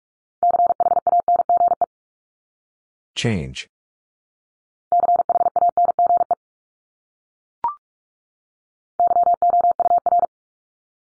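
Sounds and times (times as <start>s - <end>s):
person speaking: 3.2s - 3.7s
morse code beeps: 5.0s - 6.4s, 9.0s - 10.3s.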